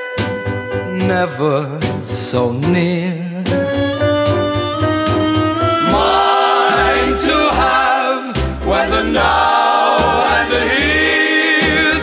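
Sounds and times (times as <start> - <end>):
bass notes: 0.0 - 12.0
vocal group singing harmony: 5.8 - 12.0.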